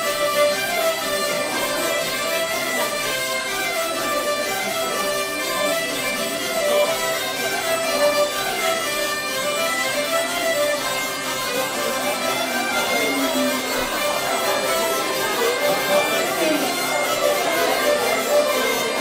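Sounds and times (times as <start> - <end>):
fiddle melody: 0.0 - 19.0
folk band playing dance music: 0.0 - 19.0.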